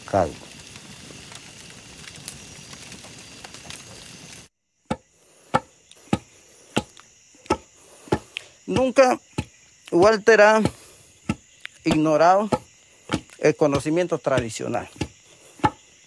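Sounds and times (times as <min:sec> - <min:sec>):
fire hissing and crackling: 0:00.0 - 0:16.0
wooden pestle thudding in mortar: 0:10.6 - 0:15.8.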